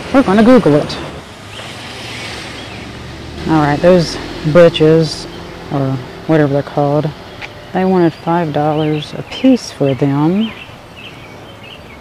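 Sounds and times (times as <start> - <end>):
soft outdoor rush: 0.0 - 12.0.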